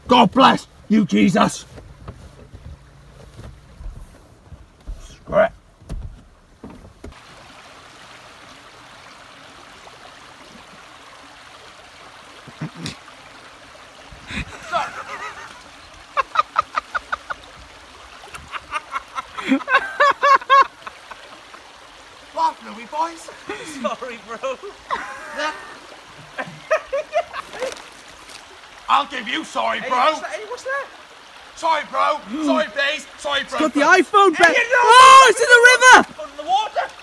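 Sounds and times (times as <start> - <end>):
shallow river running: 0.0 - 37.0.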